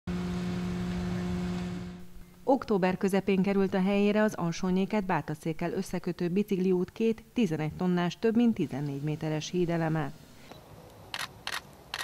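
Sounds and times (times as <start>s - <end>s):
crane engine humming: 0.1s - 2.2s
outdoor noise: 0.1s - 12.0s.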